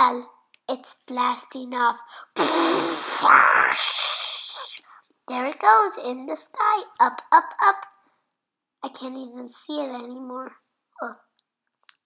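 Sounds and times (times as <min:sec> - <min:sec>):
child imitating rocket whoosh: 0:02.2 - 0:04.8.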